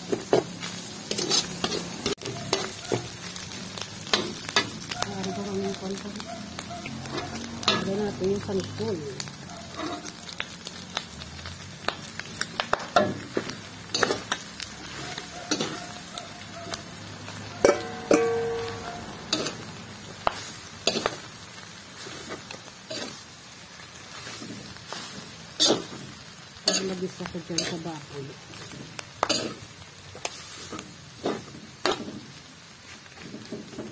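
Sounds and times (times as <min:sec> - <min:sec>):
low sizzle: 0:00.0 - 0:33.9
metal spatula scraping wok: 0:00.1 - 0:05.5, 0:06.5 - 0:10.4, 0:12.9 - 0:16.8, 0:17.4 - 0:23.3, 0:24.0 - 0:33.9
metal bowl clanging on wok: 0:07.1 - 0:08.1, 0:14.0 - 0:14.3, 0:15.4 - 0:15.9, 0:17.5 - 0:19.6, 0:29.2 - 0:29.6.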